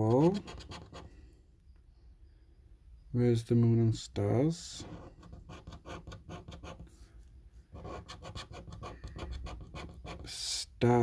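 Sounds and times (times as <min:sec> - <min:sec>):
coin scratching scratch card: 0:00.0 - 0:01.1, 0:04.8 - 0:06.9, 0:07.7 - 0:10.3.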